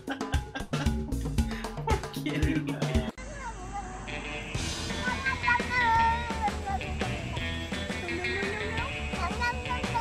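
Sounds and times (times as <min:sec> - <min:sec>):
music with steady drum beat: 0:00.0 - 0:03.2, 0:04.3 - 0:10.0.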